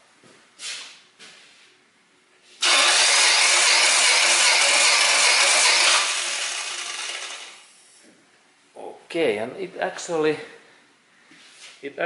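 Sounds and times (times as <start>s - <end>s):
engine cranking on starter motor: 2.6s - 7.7s.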